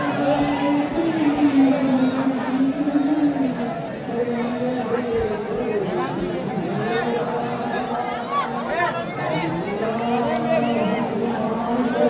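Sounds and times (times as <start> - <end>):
crowd of voices chattering: 0.0 - 12.0.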